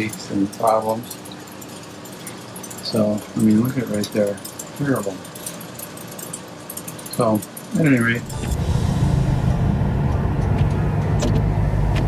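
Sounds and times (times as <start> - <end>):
faint crackles and ticks: 0.0 - 8.3
aquarium water and pumps hiss: 0.0 - 12.0.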